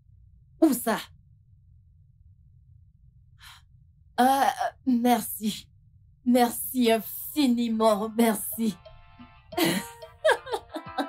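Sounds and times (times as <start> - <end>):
quiet low hum: 0.0 - 8.8.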